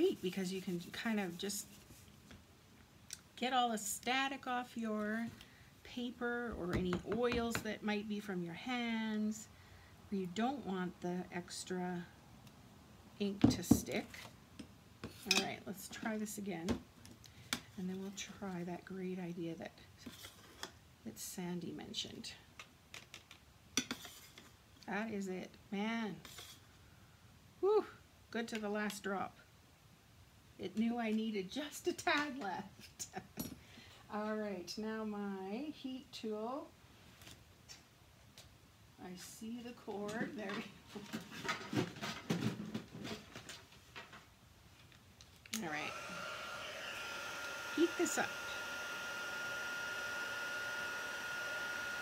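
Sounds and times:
heat tool fan whir and whine: 0:45.8 - 0:52.0.

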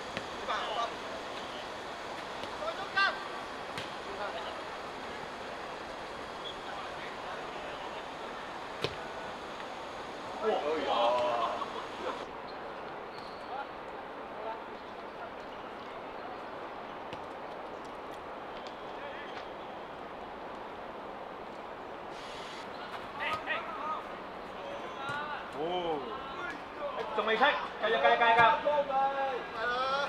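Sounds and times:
outdoor background noise: 0:00.0 - 0:30.0.

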